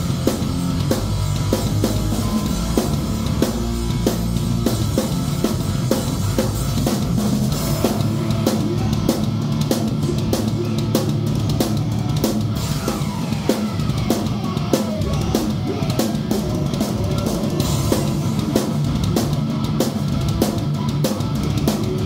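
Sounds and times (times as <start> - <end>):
drum kit beat: 0.0 - 22.0
electric guitar: 0.0 - 22.0
heavy rock band playing: 0.0 - 22.0.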